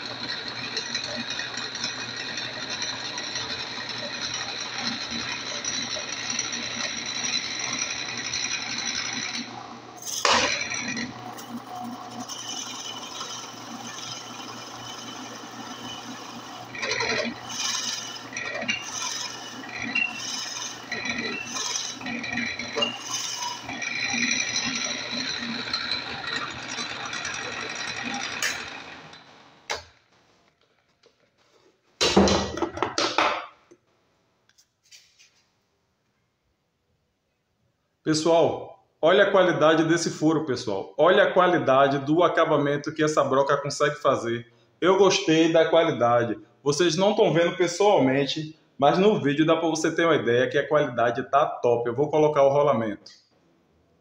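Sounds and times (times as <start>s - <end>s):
drill bit boring into wood: 0.0s - 29.8s
drill press motor humming: 0.0s - 30.1s.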